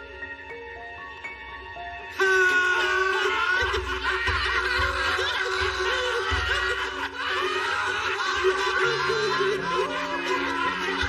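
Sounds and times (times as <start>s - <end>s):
men laughing together: 2.2s - 11.0s.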